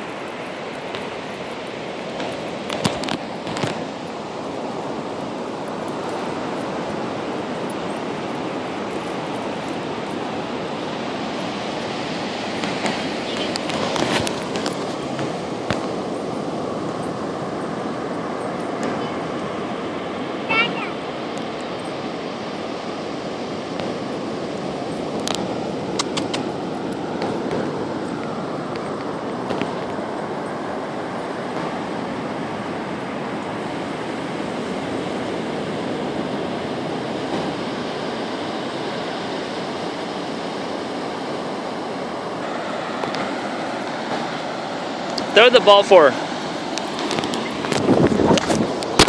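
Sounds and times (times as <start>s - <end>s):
ocean surf breaking: 0.0s - 49.0s.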